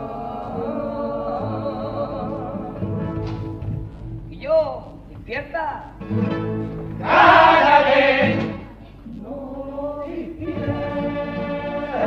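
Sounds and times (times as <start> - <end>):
male chorus singing in harmony: 0.0 - 3.2, 7.0 - 12.0.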